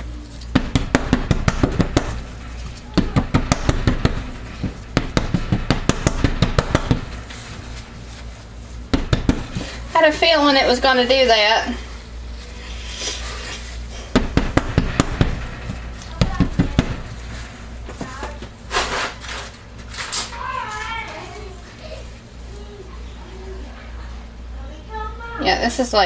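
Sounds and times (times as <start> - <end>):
plastic mold knocking on glass stove: 0.5 - 7.2, 8.9 - 9.6, 14.1 - 17.3
paper towel rustle: 6.2 - 14.1
faint child's voice: 20.3 - 25.4.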